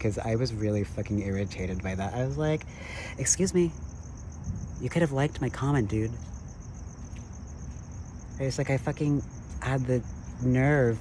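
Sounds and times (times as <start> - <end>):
crickets trilling: 0.0 - 11.0
faint low rumble: 0.0 - 11.0.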